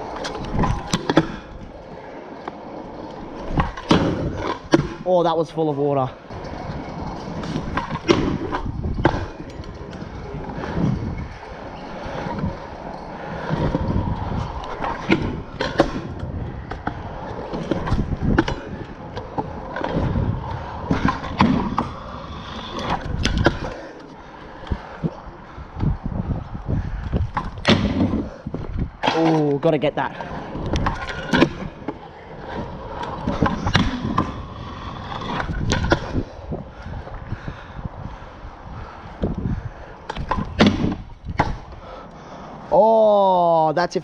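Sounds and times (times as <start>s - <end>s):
scooter wheels rolling on concrete: 0.0s - 44.0s.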